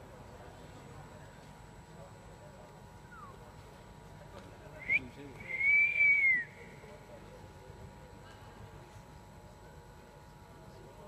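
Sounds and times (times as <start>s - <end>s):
crowd murmur: 0.0s - 11.0s
person whistling: 4.8s - 6.5s.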